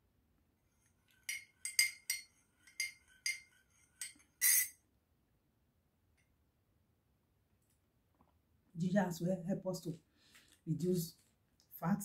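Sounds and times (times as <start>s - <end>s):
teaspoon clinking in ceramic mug: 1.2s - 4.7s.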